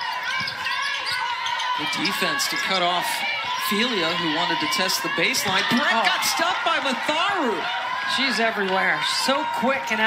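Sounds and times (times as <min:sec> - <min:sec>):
arena crowd hubbub: 0:00.0 - 0:10.0.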